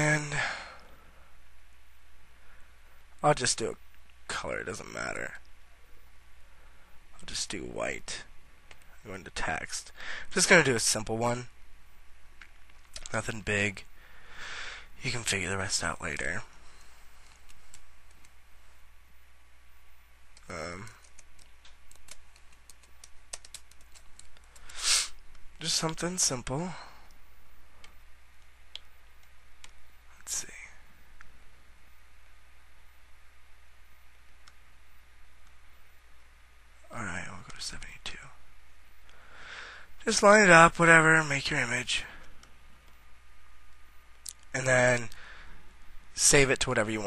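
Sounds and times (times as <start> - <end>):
faint background hiss: 0.0 - 47.0
man saying uhh: 20.5 - 21.0
breathy sigh: 39.1 - 39.9.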